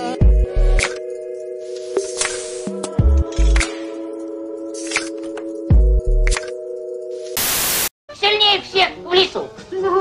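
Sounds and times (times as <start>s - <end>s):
tv static hiss: 7.4s - 7.9s.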